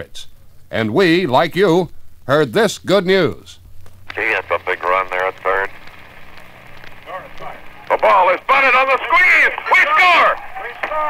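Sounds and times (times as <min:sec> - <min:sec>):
broadcast hiss: 0:00.0 - 0:11.0.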